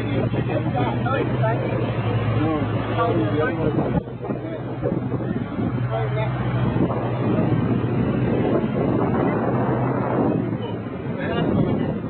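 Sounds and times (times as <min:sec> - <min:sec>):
rushing wind and water: 0:00.0 - 0:12.0
speedboat engine hum: 0:00.0 - 0:12.0
wind buffeting microphone: 0:00.0 - 0:12.0.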